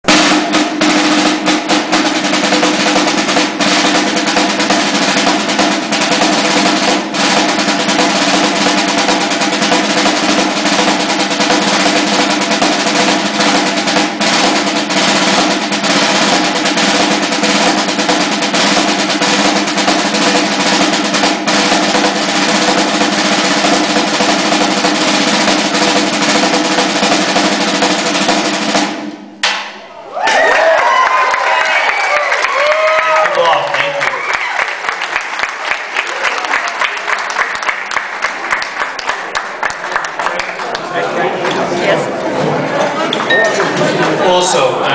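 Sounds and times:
snare drum rolls: 0.0 - 41.0.

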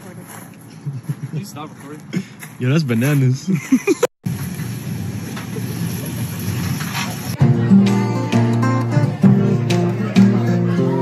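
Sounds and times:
steady noise with low rumble: 2.6 - 7.4
acoustic guitar music: 6.8 - 11.0.

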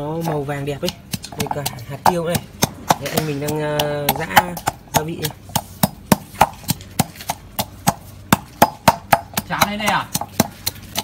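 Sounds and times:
pestle pounding in metal mortar: 0.0 - 11.0.

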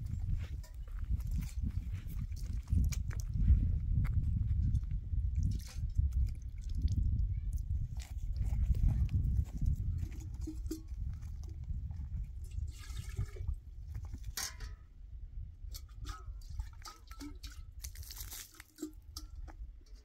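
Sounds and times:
wind rumble on microphone: 0.0 - 20.0
water pouring and splashing: 4.7 - 14.7, 15.7 - 19.5
steel flask being handled: 8.0 - 14.8, 15.6 - 20.0
metal pots clinking: 10.0 - 11.3, 12.4 - 13.5, 14.2 - 14.8, 15.7 - 20.0.

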